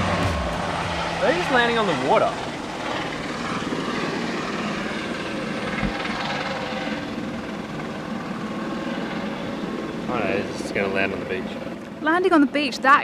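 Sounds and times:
helicopter rotor and engine: 0:00.0 - 0:13.0.

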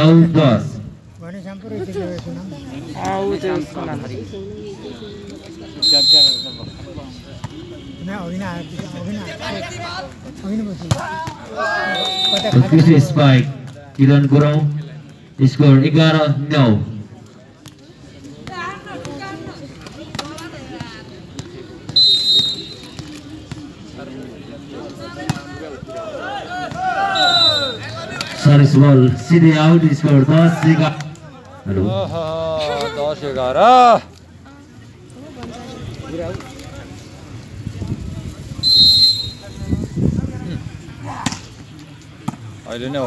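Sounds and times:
crowd chatter and shouts: 0:00.0 - 0:43.0
voices: 0:00.0 - 0:43.0
referee's whistle blasts: 0:05.8 - 0:06.8, 0:11.8 - 0:12.7, 0:21.9 - 0:23.0, 0:27.1 - 0:28.0, 0:38.6 - 0:39.7.

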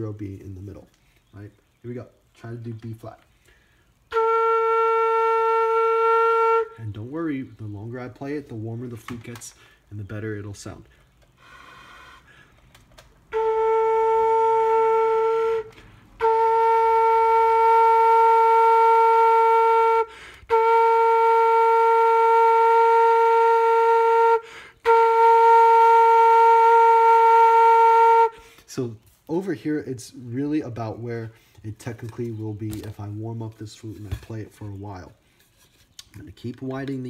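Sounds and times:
pvc flute long held notes: 0:04.0 - 0:07.6, 0:11.3 - 0:12.6, 0:13.2 - 0:29.1.

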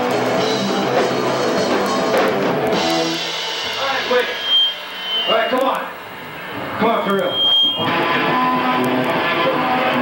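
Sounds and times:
high whine: 0:00.0 - 0:10.0
punk band playing loud: 0:00.0 - 0:10.0.

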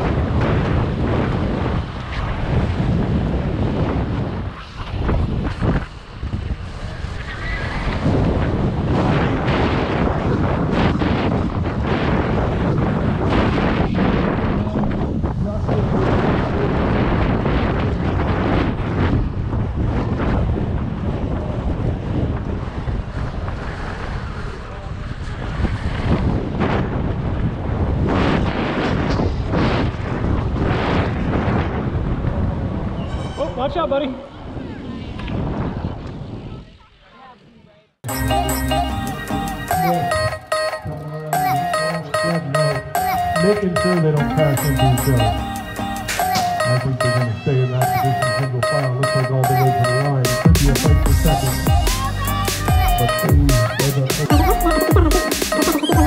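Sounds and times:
wind buffeting microphone: 0:00.0 - 0:36.8
bike tyre noise on dirt: 0:16.8 - 0:33.4.

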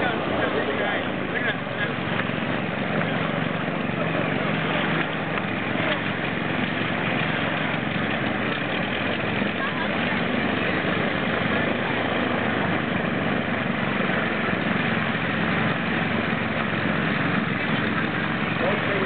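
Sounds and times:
propeller engines running: 0:00.0 - 0:19.0.

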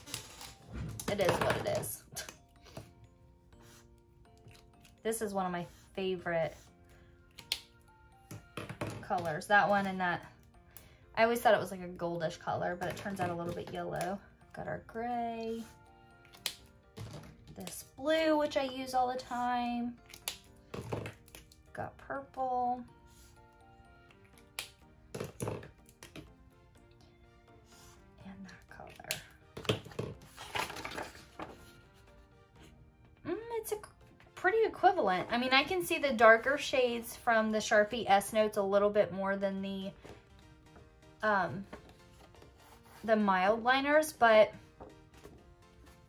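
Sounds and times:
paper rustling: 0:00.0 - 0:01.1, 0:29.9 - 0:31.8
quiet background music: 0:00.0 - 0:46.0.

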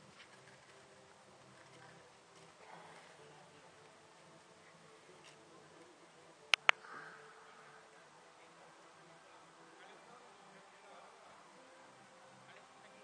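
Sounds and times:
sharp clicks: 0:06.5 - 0:06.8.

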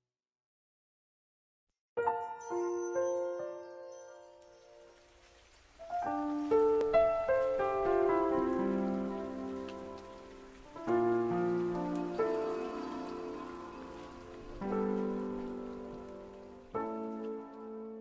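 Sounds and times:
soft piano chords: 0:02.0 - 0:18.0
faint rain-like patter: 0:03.0 - 0:18.0.

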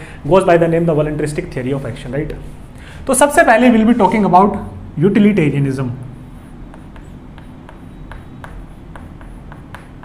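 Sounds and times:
chalk scratching on a chalkboard: 0:06.0 - 0:10.0.

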